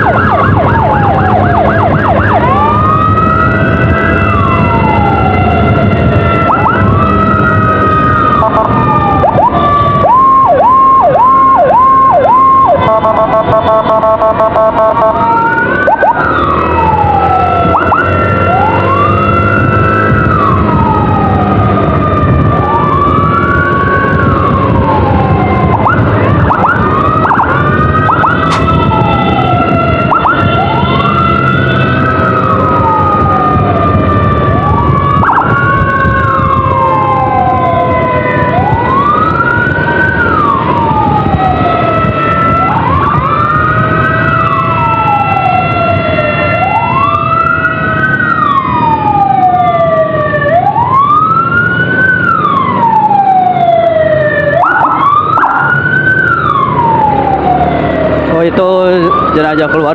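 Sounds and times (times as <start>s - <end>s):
second siren tone gliding: 0.0s - 59.9s
wailing emergency siren: 0.0s - 59.9s
wind rumble: 0.0s - 59.9s.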